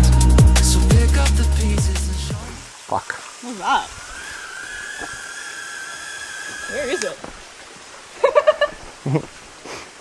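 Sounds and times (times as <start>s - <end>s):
electronic backing music: 0.0s - 2.7s
waterfall and stream rushing: 0.0s - 10.0s.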